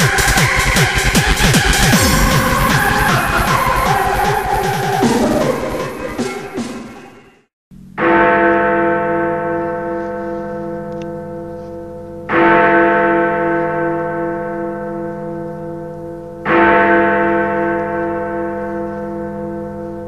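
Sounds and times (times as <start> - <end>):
large bell tolling: 0.0 - 7.2.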